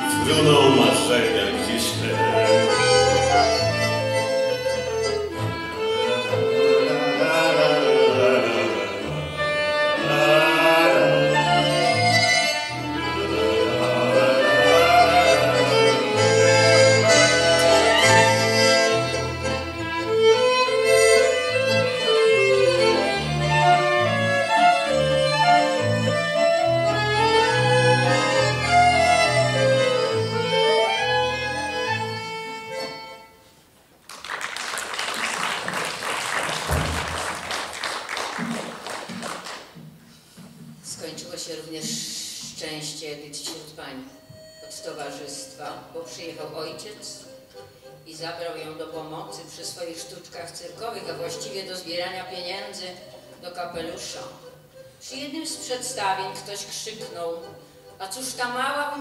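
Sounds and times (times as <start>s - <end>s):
violin: 0.0s - 33.4s, 40.6s - 59.0s
accordion: 0.0s - 33.8s, 40.9s - 59.0s
audience applauding: 34.0s - 39.8s.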